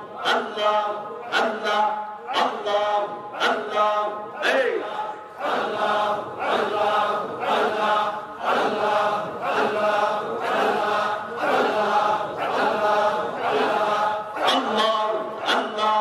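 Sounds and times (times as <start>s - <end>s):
men chanting: 0.0s - 16.0s.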